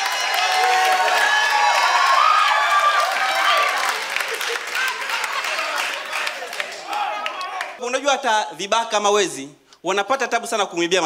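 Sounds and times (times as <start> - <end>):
audience applauding: 0.0 - 7.8
audience laughing: 3.9 - 6.9.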